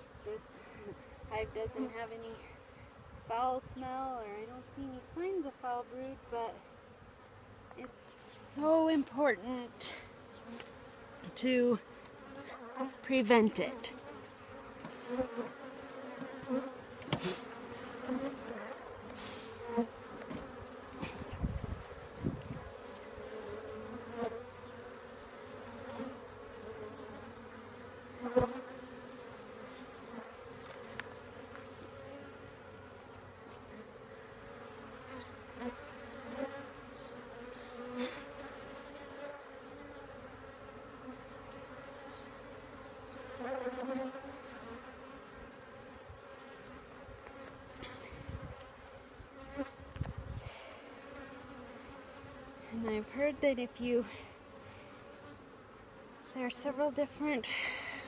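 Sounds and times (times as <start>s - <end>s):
bees humming: 7.8s - 58.0s.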